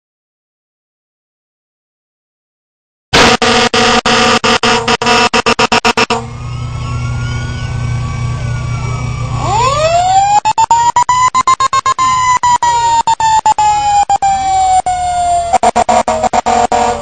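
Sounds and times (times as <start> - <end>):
air horn blast: 3.2 - 7.2, 15.5 - 17.0
diesel engine rumbling: 3.2 - 17.0
siren winding up: 3.2 - 17.0.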